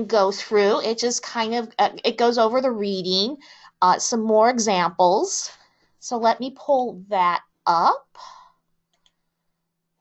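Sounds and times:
computer mouse clicking: 0:08.9 - 0:09.2.

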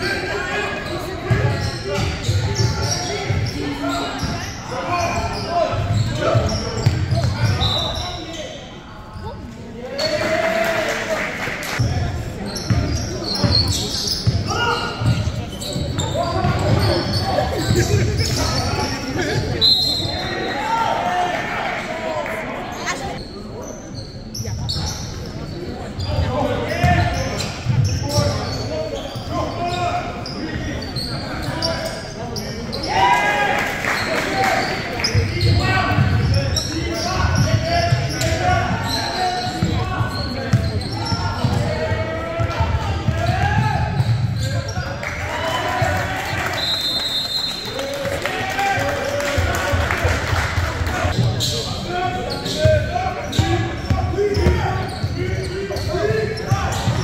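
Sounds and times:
basketball bouncing on court: 0:06.4 - 0:07.6, 0:39.5 - 0:44.5, 0:52.7 - 0:55.2.

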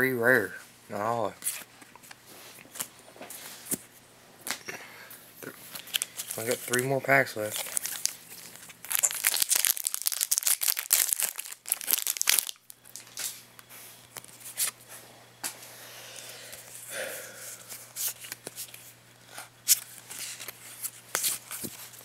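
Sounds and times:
foil wrapper tearing and crinkling: 0:05.7 - 0:06.8, 0:07.4 - 0:13.1
cards clicking and rustling: 0:05.7 - 0:13.4.

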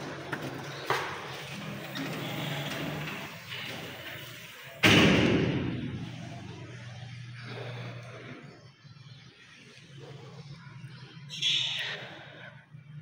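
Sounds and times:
loud bang: 0:04.8 - 0:06.3.

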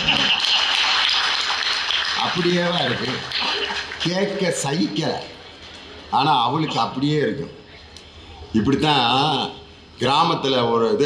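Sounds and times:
audience applauding: 0:00.0 - 0:05.4.

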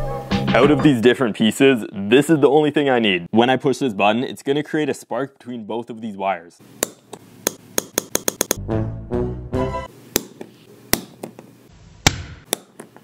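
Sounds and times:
background music: 0:00.0 - 0:01.2, 0:08.2 - 0:09.9.

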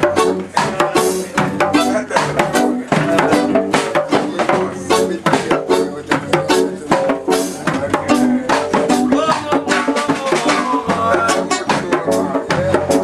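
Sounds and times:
loud music with percussion: 0:00.0 - 0:13.0.

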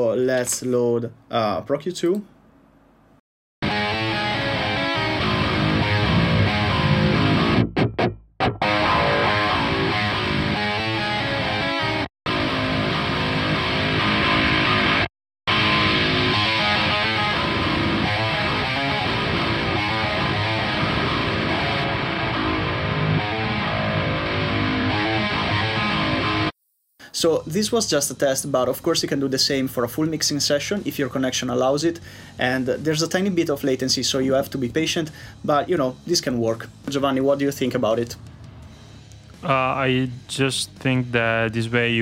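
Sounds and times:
distorted electric guitar: 0:03.6 - 0:26.5.

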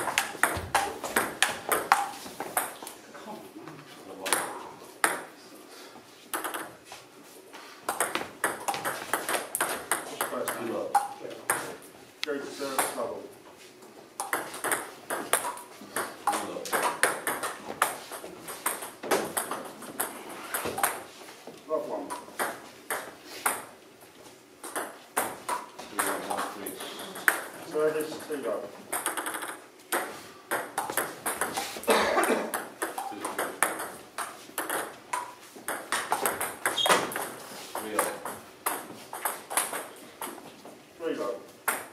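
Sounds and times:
table tennis ball clicking: 0:28.9 - 0:31.6.

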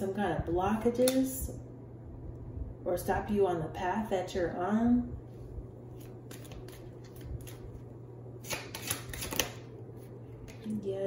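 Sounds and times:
cards being shuffled: 0:06.0 - 0:07.8, 0:08.4 - 0:10.6
sharp card snaps: 0:08.4 - 0:09.7.

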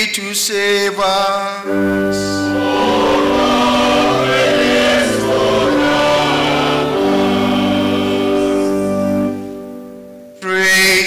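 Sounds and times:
organ accompaniment: 0:01.6 - 0:10.4
choir singing in harmony: 0:01.7 - 0:10.2.

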